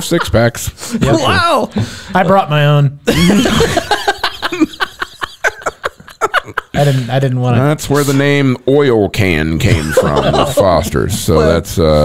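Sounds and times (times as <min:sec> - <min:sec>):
men laughing: 0:03.1 - 0:07.4, 0:09.6 - 0:11.6.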